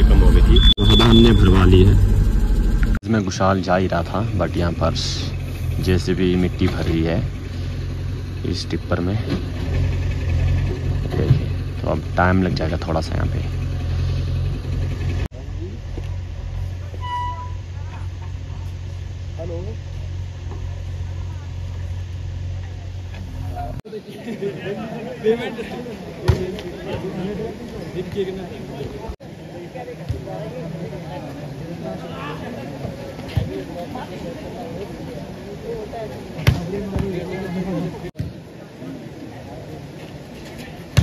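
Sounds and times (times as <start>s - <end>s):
diesel engine idling: 0.0s - 3.0s, 4.2s - 16.8s
short high beep: 0.3s - 2.1s
onlookers chattering: 3.0s - 14.6s, 17.6s - 41.0s.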